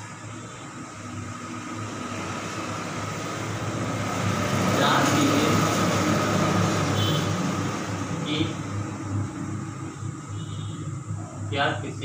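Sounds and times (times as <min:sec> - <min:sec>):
passing vehicle rumble: 0:00.8 - 0:12.0.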